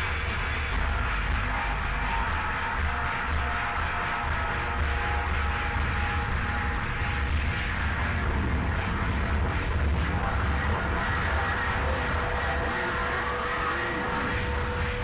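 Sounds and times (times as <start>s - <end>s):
music with heavy bass: 0.0s - 15.0s.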